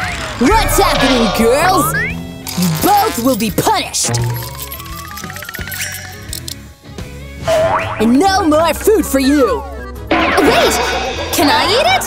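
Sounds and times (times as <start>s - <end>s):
cartoon rising wobble tone: 0.4s - 3.2s
comedy background music: 0.5s - 12.0s.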